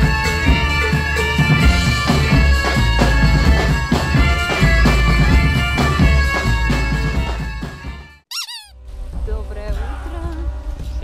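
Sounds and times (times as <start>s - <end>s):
band music: 0.0s - 8.7s
high squeak: 8.3s - 8.8s.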